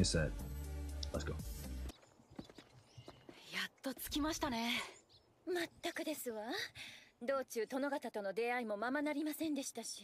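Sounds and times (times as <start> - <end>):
clip-clop of hooves: 1.9 - 3.5.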